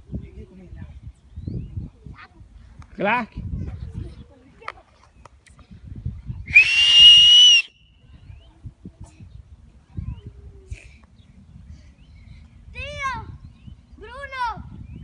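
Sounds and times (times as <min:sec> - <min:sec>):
shrill whistle: 0:06.5 - 0:08.0.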